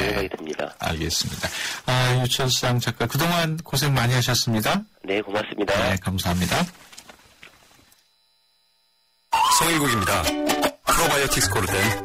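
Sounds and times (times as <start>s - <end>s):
faint electrical hum: 0.0s - 10.8s.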